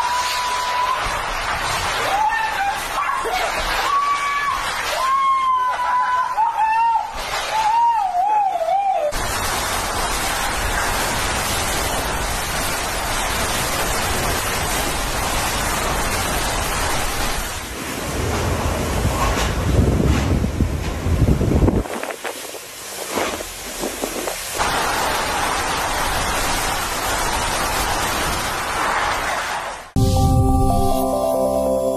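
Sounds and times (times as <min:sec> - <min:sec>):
wind and rain rushing: 0:00.0 - 0:08.0, 0:09.1 - 0:30.9
wind buffeting microphone: 0:18.1 - 0:24.5.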